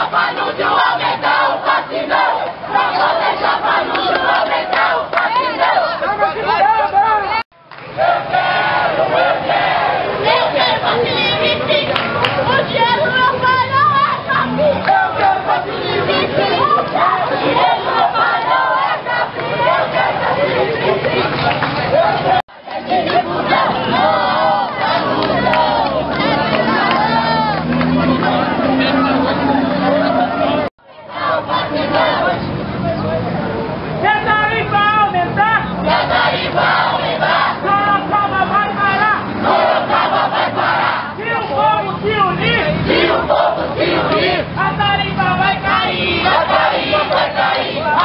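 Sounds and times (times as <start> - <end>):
crowd shouting together: 0.0 - 32.6, 34.1 - 48.0.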